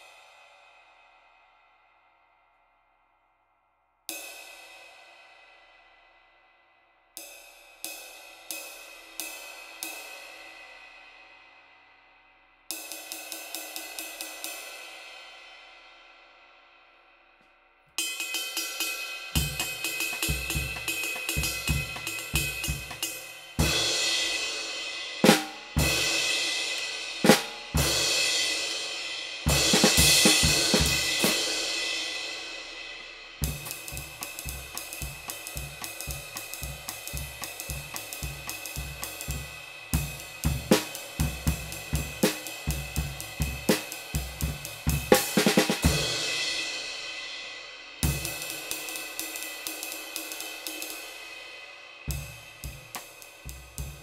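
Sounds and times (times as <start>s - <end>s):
ride cymbal played with sticks: 7.2s - 11.8s, 12.7s - 16.6s, 18.0s - 54.0s
cymbal crashes with long washes: 18.6s - 54.0s
snare drum: 19.3s - 24.4s, 25.2s - 28.2s, 29.4s - 31.6s, 33.4s - 46.8s, 52.1s - 54.0s.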